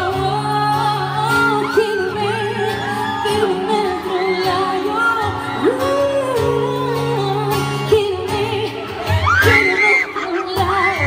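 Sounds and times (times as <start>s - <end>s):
woman singing into microphone: 0.0s - 11.0s.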